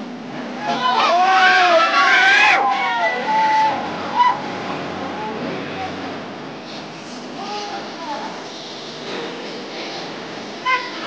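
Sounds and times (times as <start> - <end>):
loud shout: 0.6 - 4.4
crowd shouting and whooping: 0.6 - 5.4.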